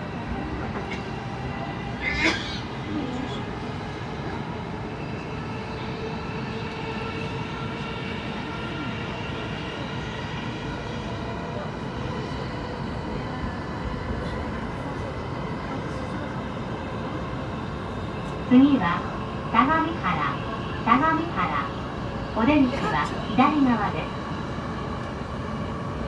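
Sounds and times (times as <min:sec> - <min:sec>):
electric train rumble: 0:00.0 - 0:26.0.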